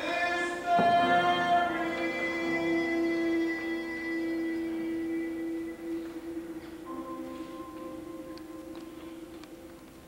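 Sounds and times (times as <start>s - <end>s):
long held musical note: 1.2s - 10.0s.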